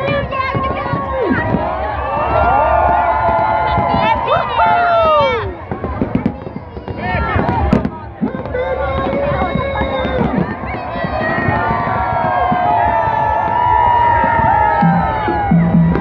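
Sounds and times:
crowd cheering and shouting: 0.0s - 16.0s
fireworks rumbling and crackling: 0.0s - 16.0s.

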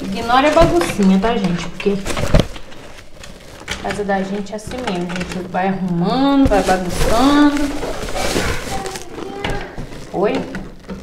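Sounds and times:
woman speaking: 0.0s - 2.1s, 3.8s - 7.8s, 10.1s - 10.6s.

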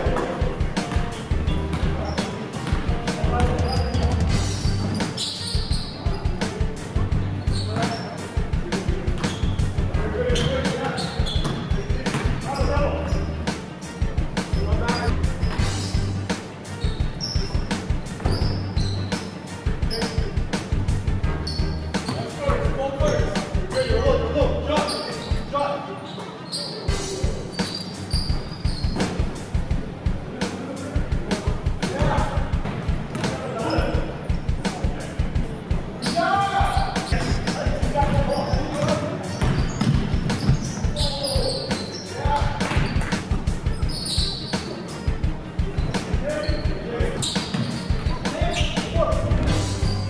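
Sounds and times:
background music with low beat: 0.0s - 25.6s, 26.9s - 50.0s
sneaker squeaks: 0.1s - 6.6s, 7.4s - 8.4s, 9.1s - 13.4s, 14.4s - 20.3s, 21.4s - 24.0s, 24.7s - 29.4s, 33.1s - 34.8s, 36.0s - 50.0s
basketball bouncing on hardwood floor: 39.4s - 40.7s.

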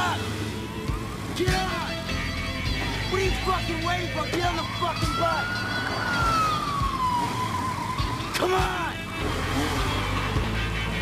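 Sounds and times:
siren wailing: 2.8s - 9.2s.

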